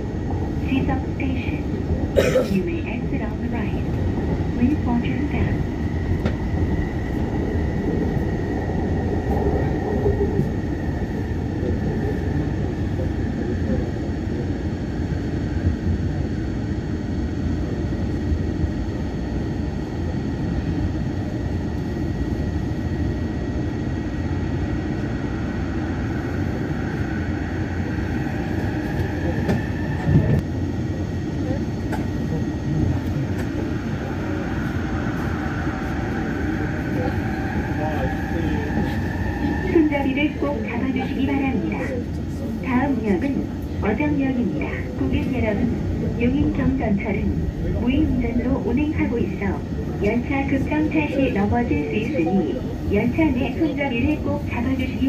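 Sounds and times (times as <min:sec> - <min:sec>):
train high whine: 0:00.0 - 0:55.0
train rumble: 0:00.0 - 0:55.0.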